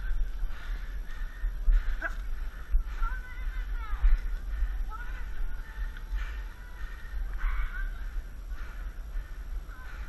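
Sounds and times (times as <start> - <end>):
steady low rumble: 0.0 - 10.0
harsh caw-like calls: 0.5 - 3.0.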